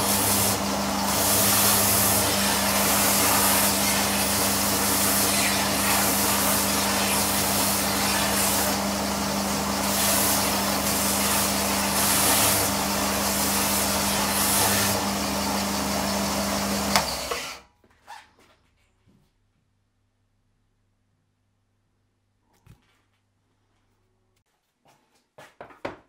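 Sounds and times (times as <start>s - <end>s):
belt sander motor hum: 0.0s - 17.6s
sander rasping on board edge: 0.0s - 17.6s.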